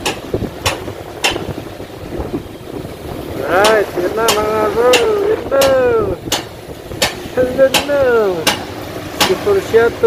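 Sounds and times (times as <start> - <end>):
ship engine rumbling: 0.0 - 10.0.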